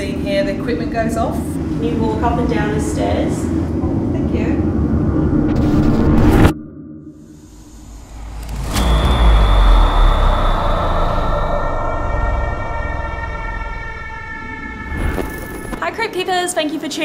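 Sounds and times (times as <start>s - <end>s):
held droning tone: 0.0s - 16.9s
low rumble: 1.4s - 16.3s
sharp hit with deep boom: 5.2s - 16.0s.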